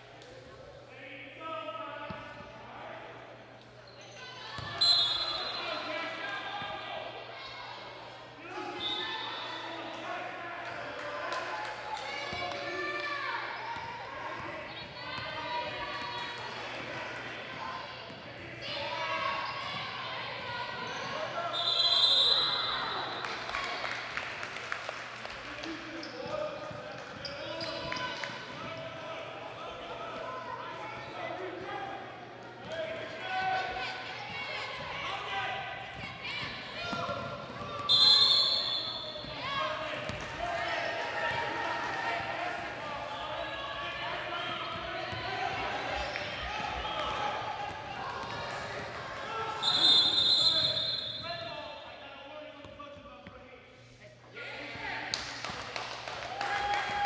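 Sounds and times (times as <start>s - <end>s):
referee whistle blasts: 4.8s - 5.8s, 21.5s - 23.0s, 37.9s - 39.2s, 49.6s - 51.3s
crowd chatter: 25.8s - 51.6s.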